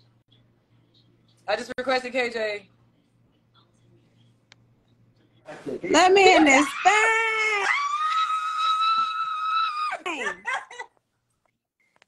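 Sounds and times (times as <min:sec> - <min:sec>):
woman squealing: 0:06.5 - 0:10.8.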